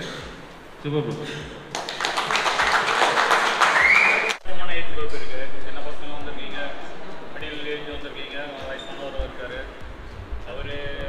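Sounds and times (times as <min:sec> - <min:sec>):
man speaking into microphone: 0:04.4 - 0:11.0
dull low thumps: 0:09.2 - 0:11.0.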